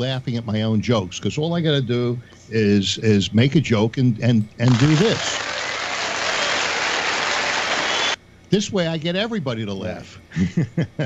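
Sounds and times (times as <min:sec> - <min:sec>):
crowd clapping: 0:04.7 - 0:08.2.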